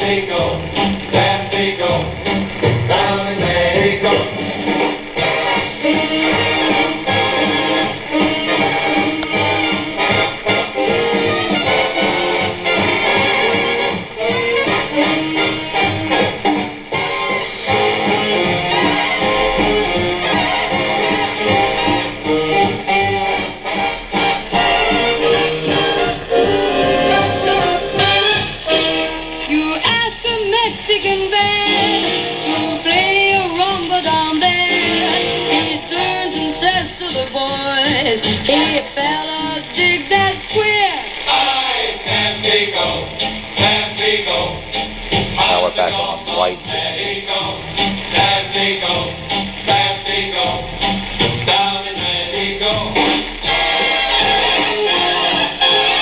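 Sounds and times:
song playing on a radio: 0.0s - 56.0s.

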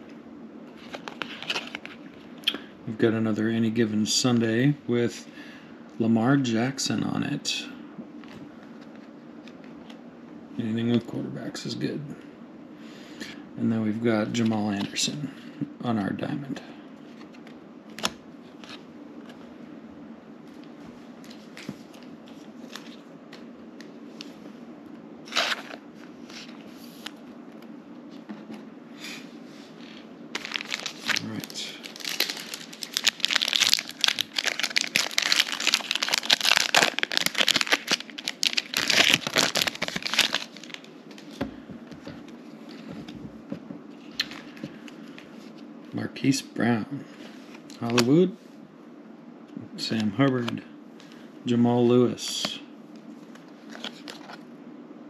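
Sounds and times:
wrapper tearing and crinkling: 0.8s - 2.0s, 25.3s - 25.8s, 30.4s - 41.3s.

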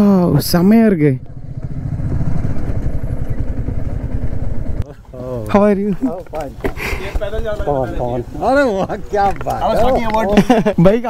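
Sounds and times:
motorcycle engine running: 0.4s - 4.8s.

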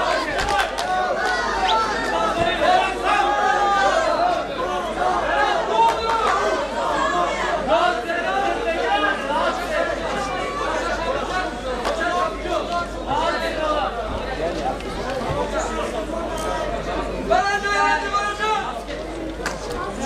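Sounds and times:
crowd babble: 0.0s - 20.0s.

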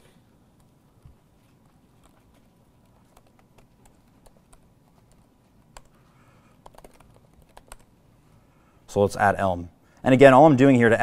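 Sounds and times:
laptop keyboard typing: 1.6s - 7.9s.

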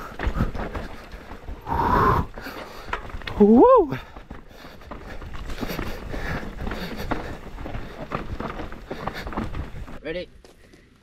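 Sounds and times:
bike clattering and rattling: 0.0s - 1.7s, 2.3s - 11.0s
tyres crunching over stones: 0.0s - 11.0s.

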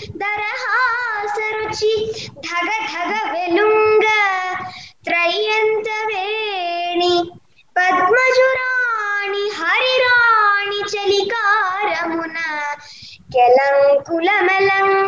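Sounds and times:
girl singing unaccompanied: 0.0s - 15.0s.

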